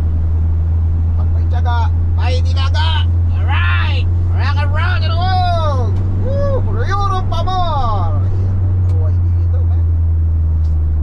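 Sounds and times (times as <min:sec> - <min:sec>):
van engine and road hum: 0:00.0 - 0:11.0
man's drawn-out voice: 0:02.2 - 0:08.4.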